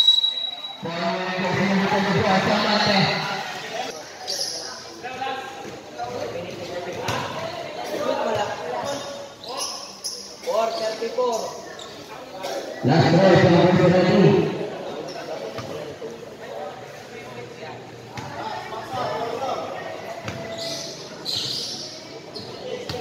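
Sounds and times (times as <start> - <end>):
echoing voices calling out: 12.7 - 15.1.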